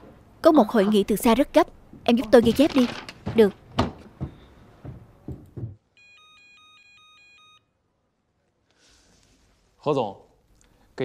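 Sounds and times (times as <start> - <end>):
electronic two-pitch ringing tone: 6.0 - 7.7.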